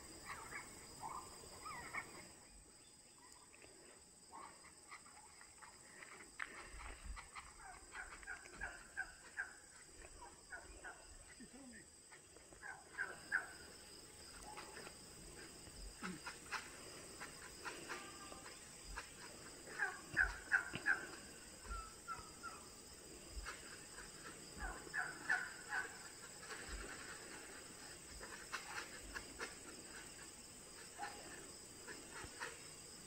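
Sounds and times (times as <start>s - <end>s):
turkeys calling: 0.2s - 2.3s, 4.4s - 11.4s, 12.1s - 32.8s.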